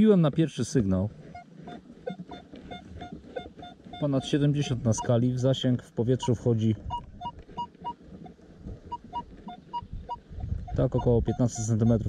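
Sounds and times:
metal detector beeping: 1.3s - 5.4s, 6.1s - 8.0s, 8.9s - 12.0s.

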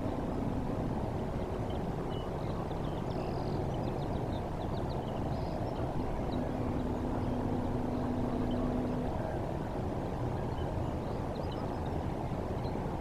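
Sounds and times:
low hum: 0.0s - 2.8s, 5.6s - 12.2s
low outdoor rumble over water: 0.0s - 13.0s.

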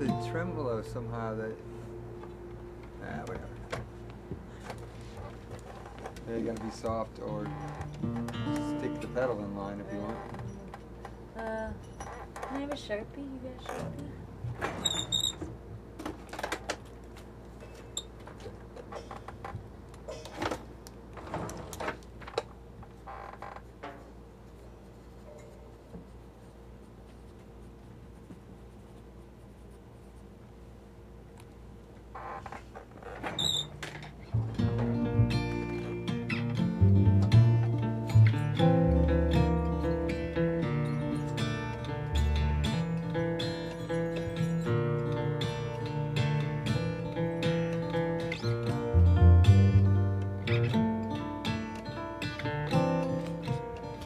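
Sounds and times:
acoustic guitar playing: 0.0s - 10.8s, 34.2s - 54.0s.

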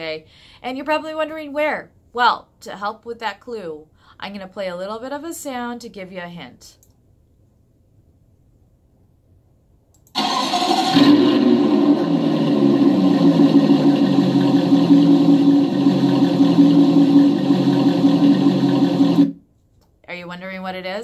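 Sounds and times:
car engine starting and running: 10.1s - 19.4s.

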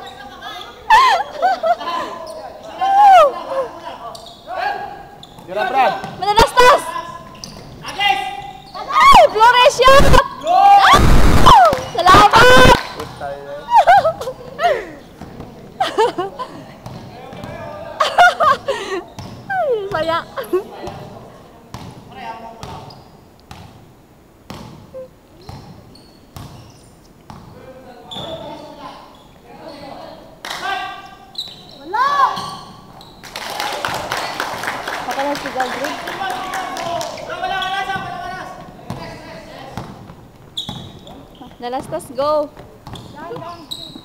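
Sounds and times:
people shouting: 8.8s - 12.8s
basketball bouncing on court: 16.8s - 17.6s, 19.2s - 20.2s, 23.5s - 23.8s, 24.5s - 24.8s, 26.4s - 26.7s, 37.9s - 39.2s, 39.8s - 44.0s.

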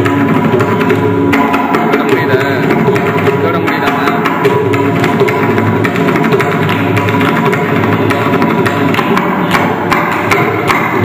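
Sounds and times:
mridangam rapid strokes: 0.0s - 11.0s.

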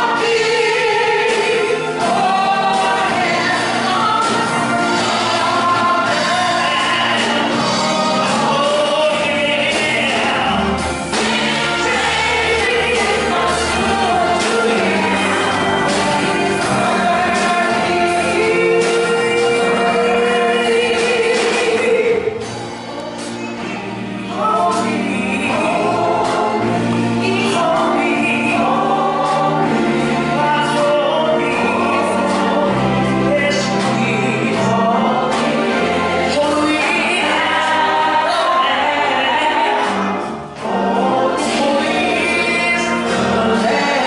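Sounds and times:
gospel choir singing: 0.0s - 44.0s.

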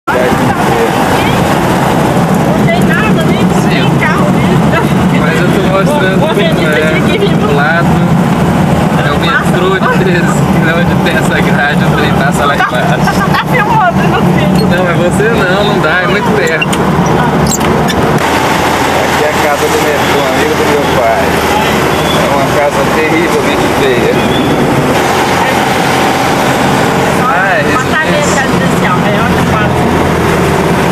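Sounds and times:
car engine and road noise: 0.0s - 30.9s
people talking indistinctly: 0.0s - 30.9s
steady whine: 0.1s - 30.9s.

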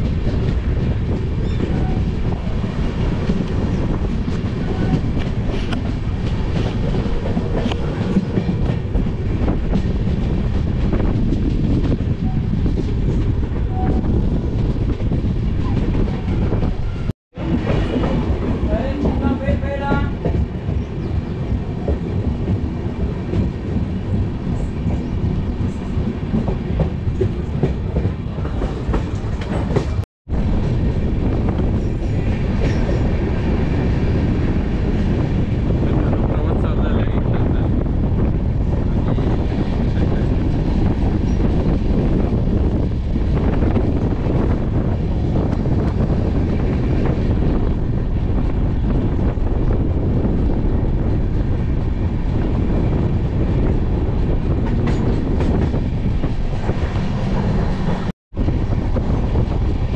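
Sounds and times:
train wheels clickety-clack: 0.0s - 37.6s, 51.3s - 59.9s.

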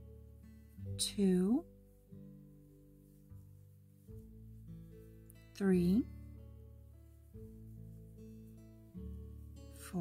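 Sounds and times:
soft acoustic guitar music: 0.0s - 10.0s.

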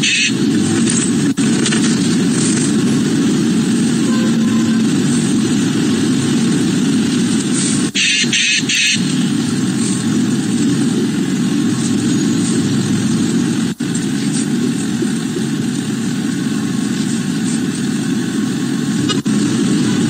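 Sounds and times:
engine and road rumble: 0.0s - 20.0s.

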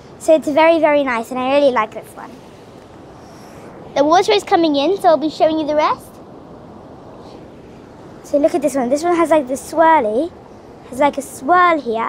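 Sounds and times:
surf washing on shore: 0.0s - 12.0s.

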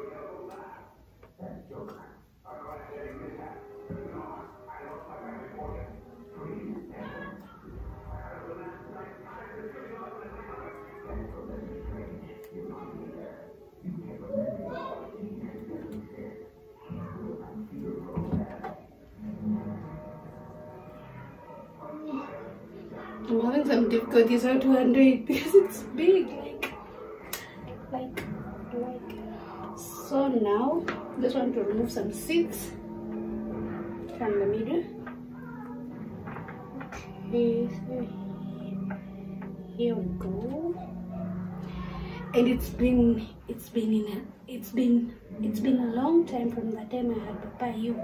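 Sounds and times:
person talking or singing: 41.6s - 48.0s.

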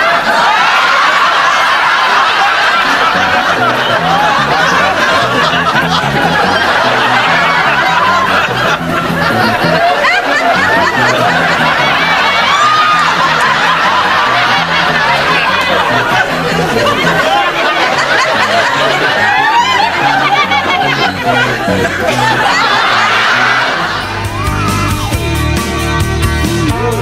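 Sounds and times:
people laughing: 0.0s - 27.0s
music with low bass line: 3.1s - 27.0s.

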